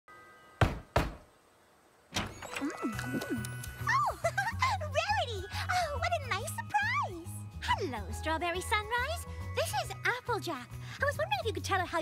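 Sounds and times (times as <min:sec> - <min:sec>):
knocks on a door: 0:00.6 - 0:01.2.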